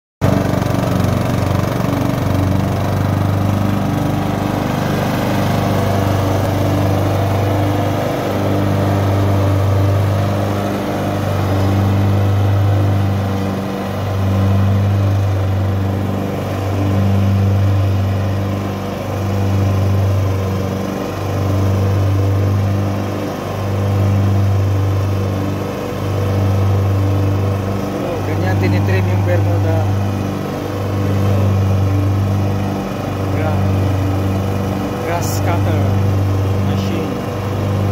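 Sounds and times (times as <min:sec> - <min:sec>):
riding lawn mower engine hum: 0:00.2 - 0:37.9.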